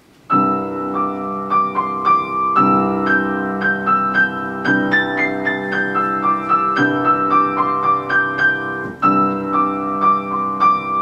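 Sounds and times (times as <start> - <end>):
grand piano playing: 0.3 - 11.0.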